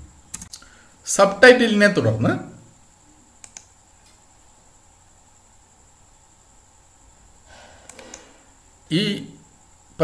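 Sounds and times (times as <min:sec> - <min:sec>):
computer mouse clicks: 0:00.3 - 0:00.7, 0:03.4 - 0:04.2, 0:07.8 - 0:08.3.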